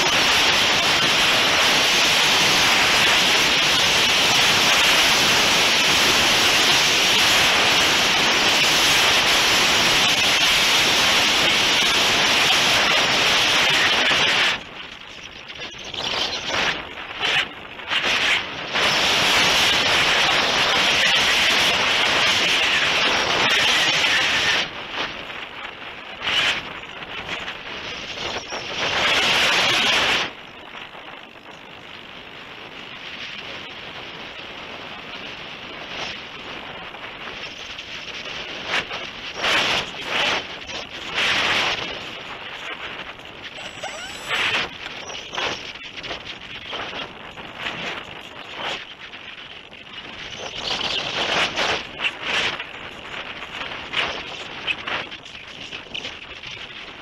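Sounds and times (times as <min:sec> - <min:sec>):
wind rushing over glider: 0:00.0 - 0:57.0.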